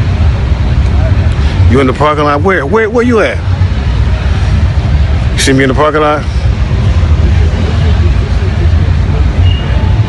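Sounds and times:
faint distant voices: 0.5s - 10.0s.

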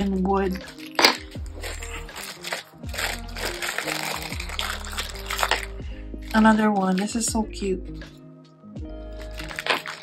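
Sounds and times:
plastic bag rustling: 0.0s - 7.3s, 9.1s - 10.0s
background music with low bass: 0.0s - 10.0s.

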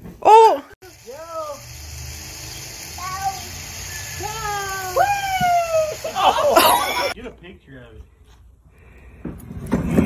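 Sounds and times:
high-pitched drawn-out cries: 2.4s - 7.2s.

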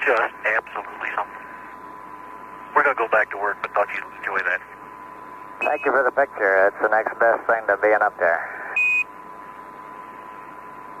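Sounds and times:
radio channel hiss: 0.0s - 1.8s, 2.7s - 4.8s, 5.7s - 8.8s.

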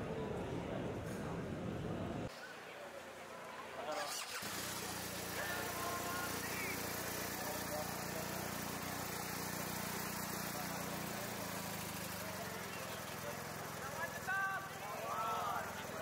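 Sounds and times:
murmur of crowd voices: 0.0s - 16.0s
car engine idling: 4.1s - 16.0s.

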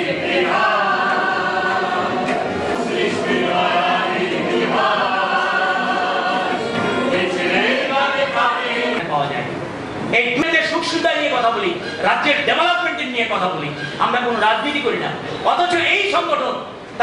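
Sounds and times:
group of voices singing: 0.0s - 9.0s.

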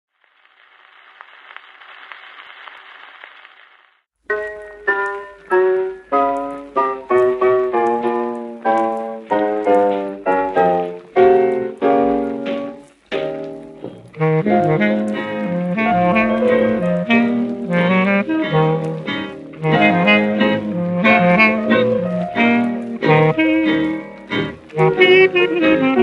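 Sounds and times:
vinyl record crackle and hiss: 0.1s - 26.0s
jazz piano chords: 4.3s - 26.0s.

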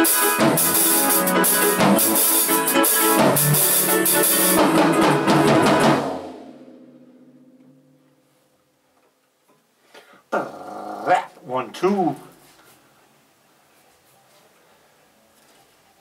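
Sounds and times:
drum kit playing: 0.0s - 8.2s.

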